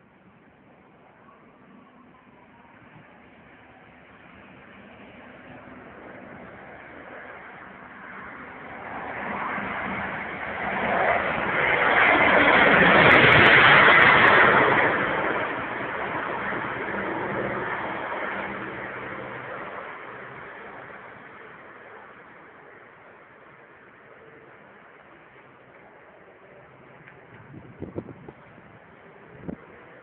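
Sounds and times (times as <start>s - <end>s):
propeller aircraft passing: 1.6s - 30.0s.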